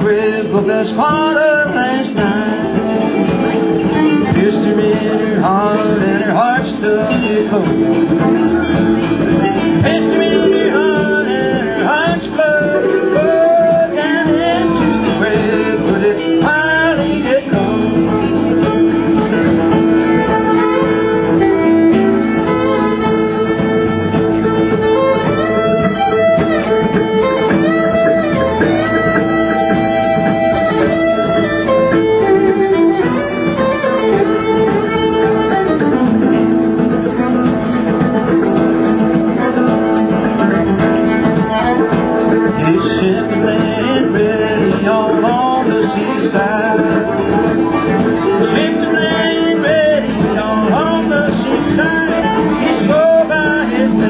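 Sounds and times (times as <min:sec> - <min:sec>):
fiddle with sliding notes: 0:00.0 - 0:54.0
plucked string accompaniment: 0:00.0 - 0:54.0.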